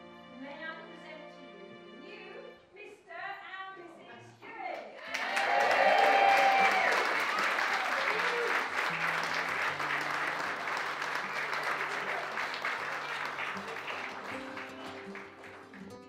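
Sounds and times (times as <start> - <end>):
soft background music: 0.0 - 2.9
people whooping: 5.0 - 15.5
crowd applauding: 5.0 - 16.0.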